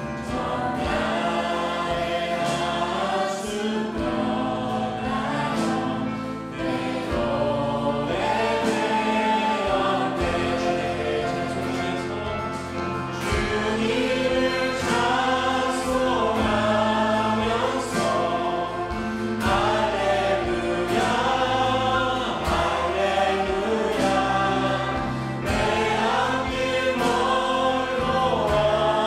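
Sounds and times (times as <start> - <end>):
group of people singing in harmony: 0.0 - 29.0
instruments playing along: 0.0 - 29.0.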